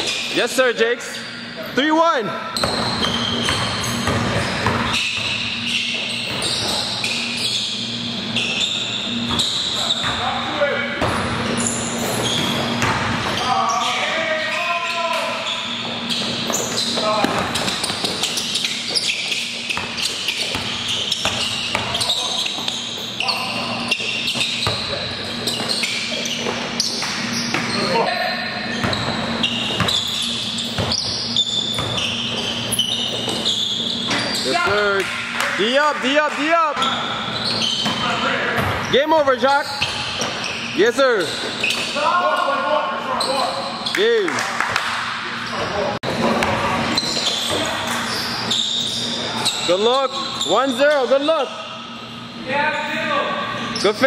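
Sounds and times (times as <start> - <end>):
sneaker squeaks: 0.0 - 54.0
basketball dribbling: 2.6 - 7.3, 15.8 - 27.8, 28.7 - 33.7
players calling out: 4.9 - 39.8.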